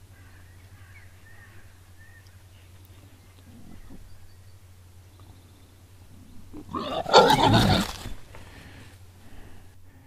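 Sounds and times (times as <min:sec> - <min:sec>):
low steady hum: 0:00.0 - 0:10.0
boar squealing: 0:06.6 - 0:08.1.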